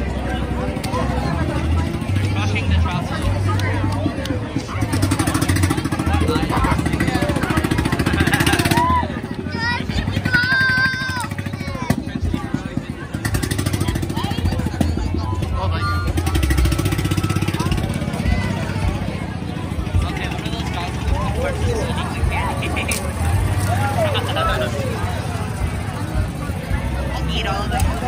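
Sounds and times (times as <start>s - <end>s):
crowd chatter: 0.0s - 28.0s
vehicle engine rough pulse: 0.0s - 28.0s.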